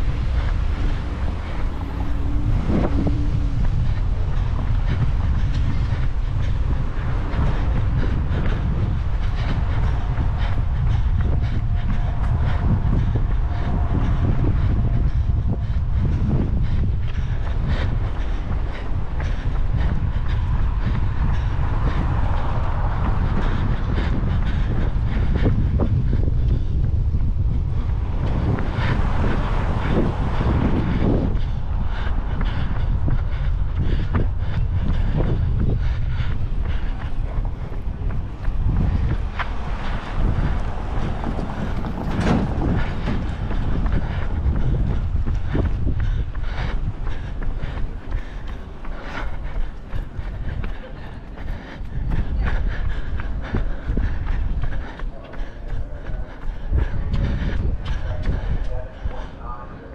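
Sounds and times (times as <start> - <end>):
runner's footfalls: 0.0 - 59.1
wind buffeting microphone: 0.0 - 59.9.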